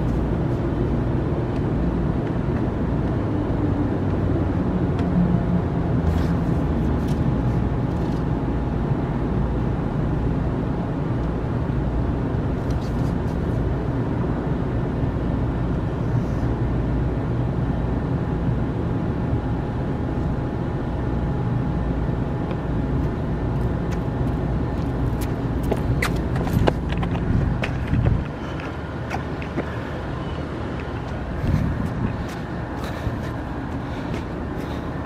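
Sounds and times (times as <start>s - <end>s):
low outdoor rumble: 0.0s - 35.0s.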